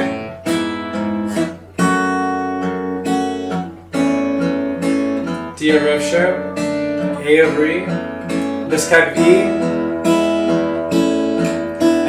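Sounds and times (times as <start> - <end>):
acoustic guitar fingerpicked chords: 0.0 - 12.0.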